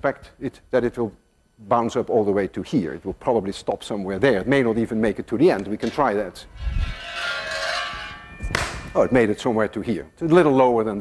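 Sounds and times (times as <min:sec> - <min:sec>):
ringing tones: 0:06.8 - 0:10.2
sharp knock: 0:08.4 - 0:09.0.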